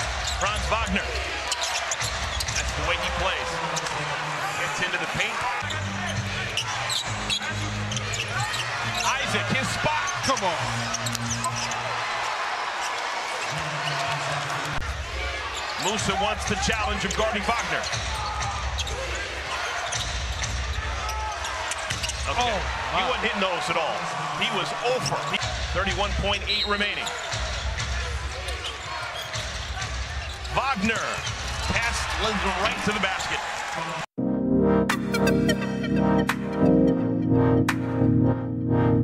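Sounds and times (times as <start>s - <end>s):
arena crowd noise: 0.0s - 34.1s.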